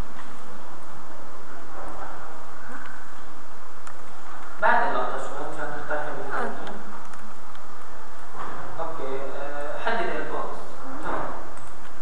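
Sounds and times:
recording hiss: 0.0 - 10.8.

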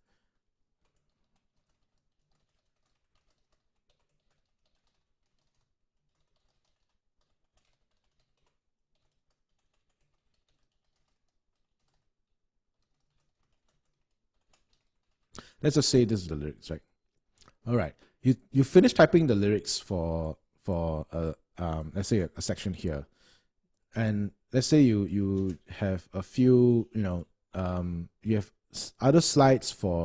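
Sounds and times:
faint keyboard typing: 0.0 - 18.2, 24.6 - 29.0.

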